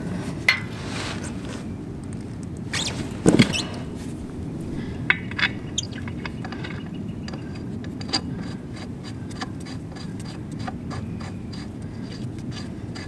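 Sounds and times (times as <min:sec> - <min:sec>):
metallic clicks of lug nuts: 0:02.8 - 0:08.6.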